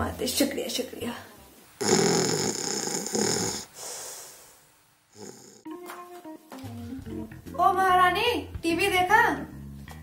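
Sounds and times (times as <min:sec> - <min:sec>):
cartoon snoring: 0:01.8 - 0:05.7.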